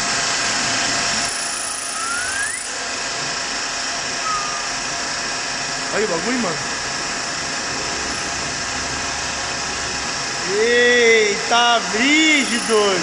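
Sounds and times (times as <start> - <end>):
metal lathe boring metal: 11.8 - 13.0.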